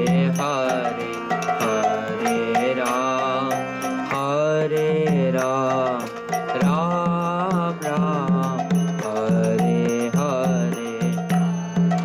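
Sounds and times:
drum beating steady rhythm: 0.0s - 12.0s
harmonium chords: 0.0s - 12.0s
person singing a chant: 0.0s - 12.0s.

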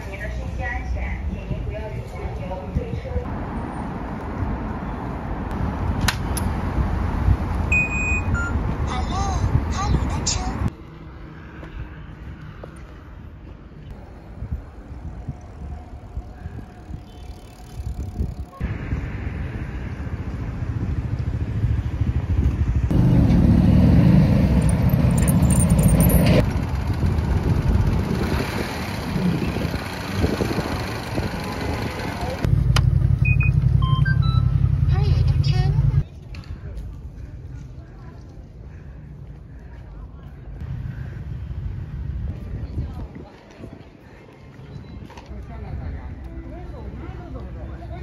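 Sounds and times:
road traffic: 0.0s - 48.0s
wind buffeting microphone: 14.0s - 19.2s, 26.4s - 32.4s, 41.8s - 45.1s.

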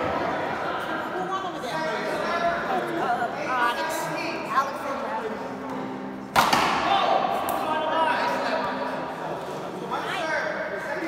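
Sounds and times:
paddle striking ball: 6.3s - 7.0s.

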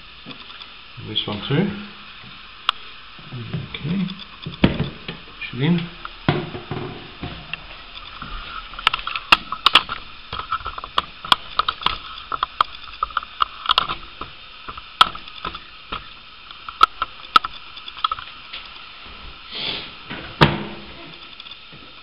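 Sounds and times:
hard objects clicking and knocking: 6.3s - 18.3s.

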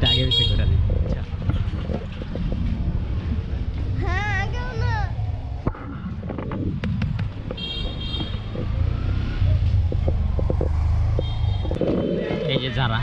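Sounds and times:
traffic rumble: 0.0s - 13.0s
vehicle horn toots: 7.6s - 8.5s.

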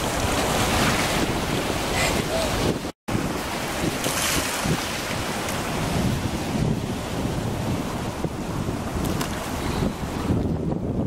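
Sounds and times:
ocean surf rushing: 0.0s - 11.0s
wind buffeting microphone: 0.0s - 11.0s.

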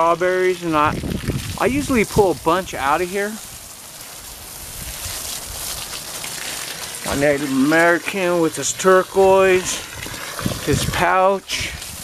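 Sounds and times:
hose water spraying on soil: 0.0s - 12.0s
wind rumble on microphone: 0.7s - 2.8s, 9.2s - 12.0s.

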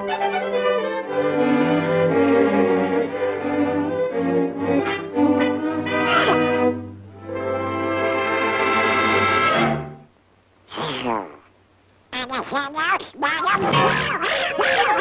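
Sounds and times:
orchestral cartoon music with brass: 0.0s - 10.0s.

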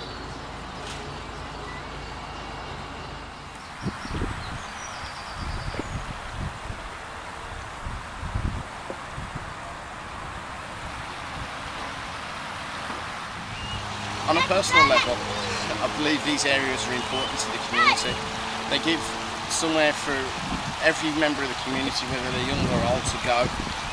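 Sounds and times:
steady outdoor hiss: 0.0s - 23.9s
wind gusting on microphone: 3.2s - 23.9s.

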